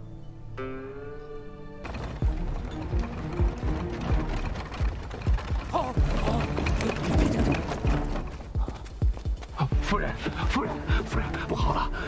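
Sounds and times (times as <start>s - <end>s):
dramatic background music: 0.5s - 12.0s
horse hooves on dirt road: 1.8s - 12.0s
man speaking urgently: 9.6s - 12.0s.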